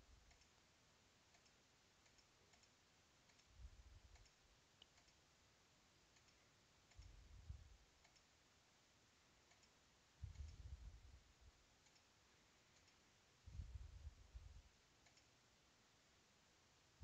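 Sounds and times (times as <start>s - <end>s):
faint computer mouse clicks: 0.2s - 0.6s, 1.3s - 5.2s, 6.1s - 7.2s, 8.0s - 8.3s, 9.4s - 10.6s, 11.8s - 13.0s, 15.0s - 15.4s.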